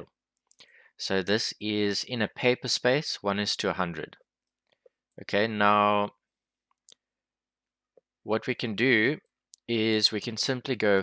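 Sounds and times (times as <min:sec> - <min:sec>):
person speaking: 0:05.2 - 0:06.1, 0:08.3 - 0:11.0.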